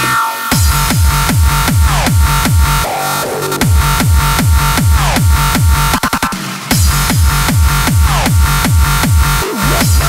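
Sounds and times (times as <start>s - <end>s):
fast dance music: 0.0s - 10.0s
heavy kick drum: 0.5s - 2.9s, 3.6s - 10.0s.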